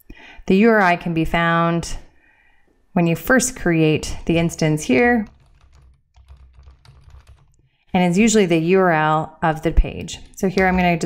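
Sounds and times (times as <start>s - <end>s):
typing on a keyboard: 5.2s - 7.6s, 10.1s - 11.0s.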